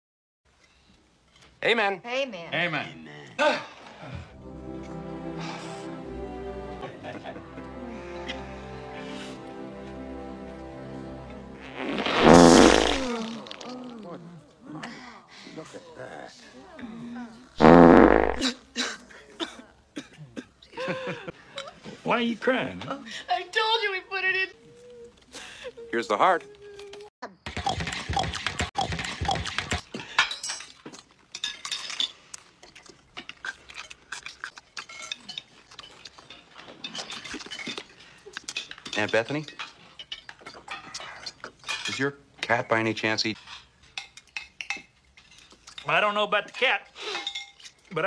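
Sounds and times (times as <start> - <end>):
low buzzing fart sound: 11.6 - 13.4, 17.6 - 18.4
cutlery clinking on plates: 29.6 - 42.6, 43.4 - 45.9, 47.0 - 47.9.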